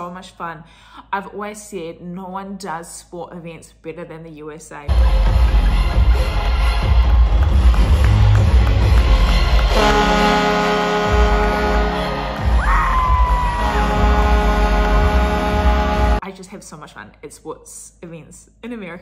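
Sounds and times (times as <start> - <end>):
arena music with heavy bass: 4.9 - 16.2
crowd cheering: 4.9 - 16.2
long held chord: 8.9 - 12.5, 13.5 - 16.2.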